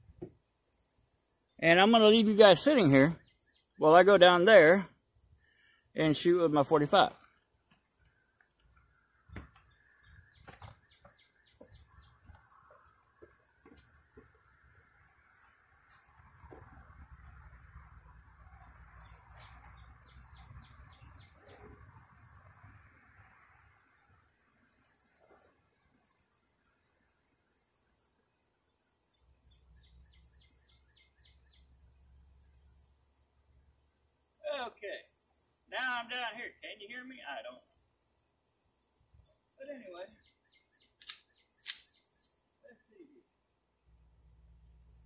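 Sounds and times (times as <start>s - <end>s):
bird chirping: 1.2s - 15.8s, 16.4s - 24.2s, 28.4s - 34.7s, 38.7s - 43.4s.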